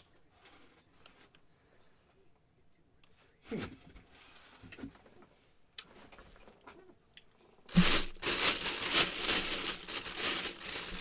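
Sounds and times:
plastic bag crinkling: 0:07.7 - 0:11.0.

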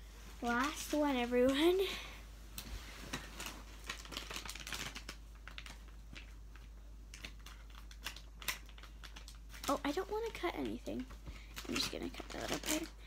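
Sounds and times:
foil packaging crinkling: 0:03.0 - 0:13.0.

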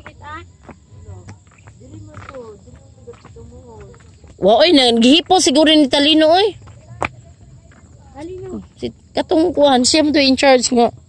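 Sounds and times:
crickets chirring: 0:00.0 - 0:11.0.

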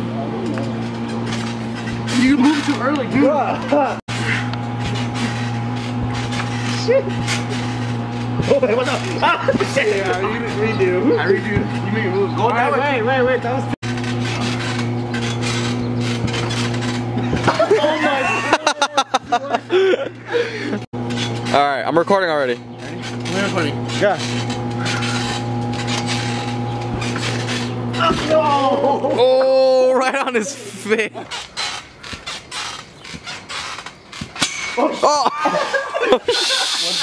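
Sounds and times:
steady low hum: 0:00.0 - 0:37.0
trampoline springs rasping: 0:00.0 - 0:37.0.

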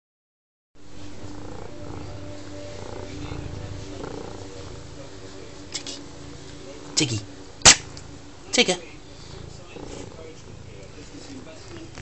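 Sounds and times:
cat purring: 0:00.8 - 0:12.0.

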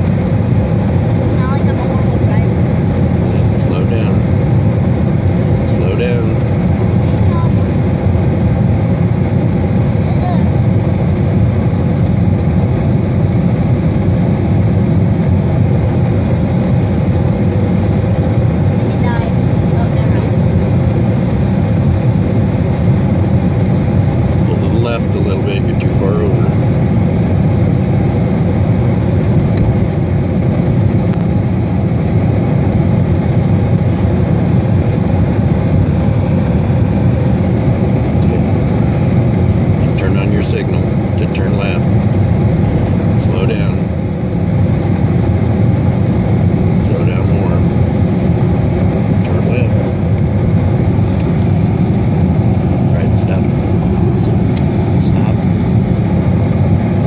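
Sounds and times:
car engine rumbling: 0:00.0 - 0:57.0.

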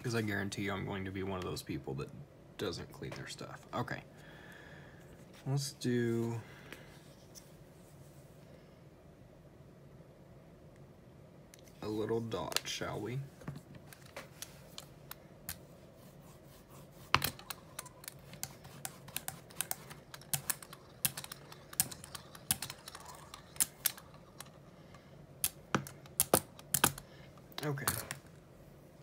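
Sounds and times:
sharp clicks and taps: 0:25.4 - 0:28.2.

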